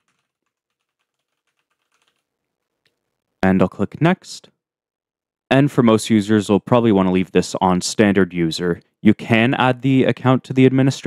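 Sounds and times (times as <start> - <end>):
faint keyboard typing: 0.0 - 3.4.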